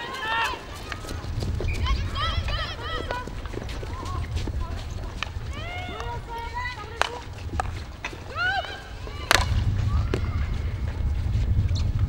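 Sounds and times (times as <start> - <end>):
players calling out: 0.0 - 11.0
wind on microphone: 0.3 - 12.0.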